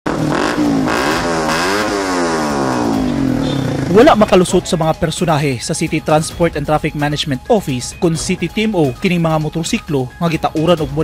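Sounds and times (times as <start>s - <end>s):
motorcycle revving loudly: 0.1s - 4.8s.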